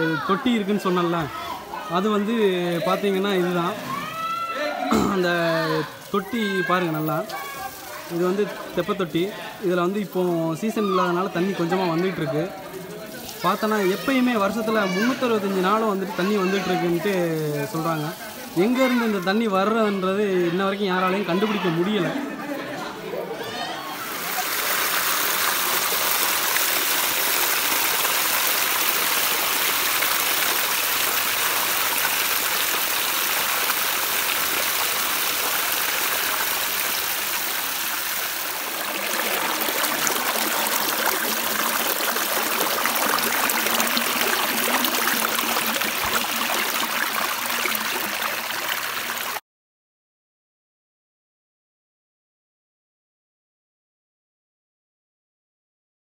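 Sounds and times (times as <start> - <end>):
stream rippling over rocks: 24.0 - 49.4.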